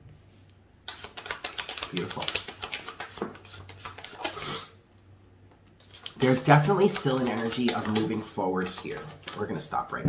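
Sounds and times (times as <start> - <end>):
cards being shuffled: 0.8 - 4.5, 5.8 - 10.0.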